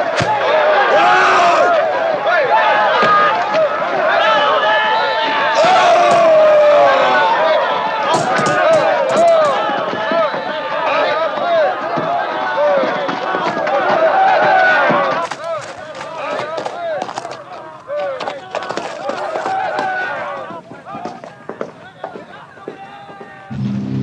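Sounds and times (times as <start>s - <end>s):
men shouting: 0.0s - 23.5s
music: 23.5s - 24.0s.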